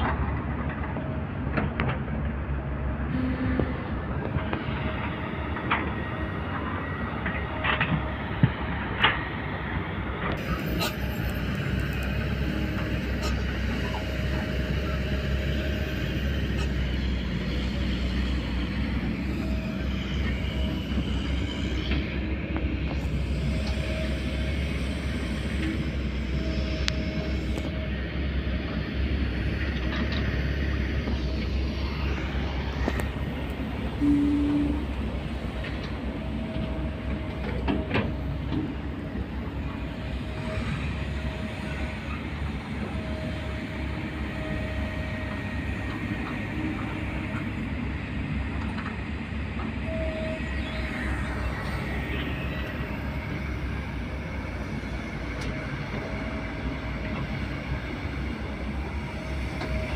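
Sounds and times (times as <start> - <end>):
distant diesel machinery rumble: 0.0 - 59.9.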